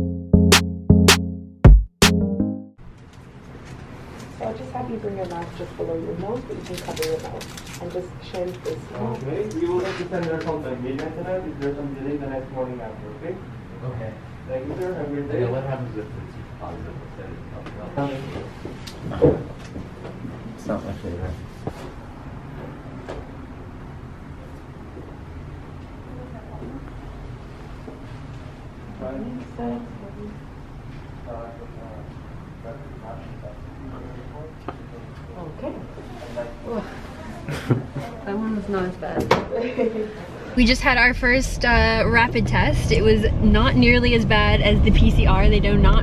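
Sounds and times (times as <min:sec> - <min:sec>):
low room noise rumble: 0:02.8 - 0:46.0.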